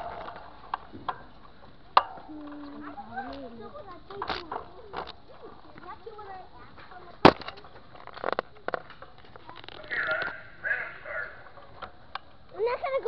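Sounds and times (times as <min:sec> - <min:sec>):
brief voices: 0:09.8 - 0:11.5.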